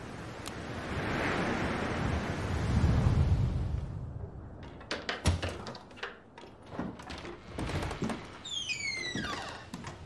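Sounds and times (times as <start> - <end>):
rushing wind-like noise: 0.0 - 4.8.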